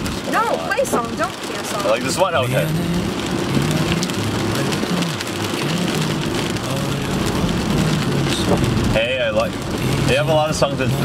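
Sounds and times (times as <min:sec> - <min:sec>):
rain on car: 0:00.0 - 0:11.0
road noise inside car: 0:00.0 - 0:11.0.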